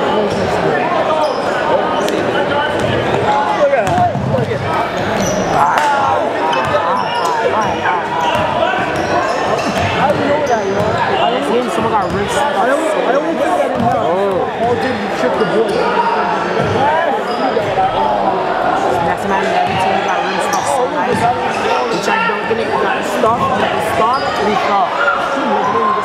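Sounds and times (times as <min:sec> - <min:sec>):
spectators chattering and shouting: 0:00.0 - 0:26.0.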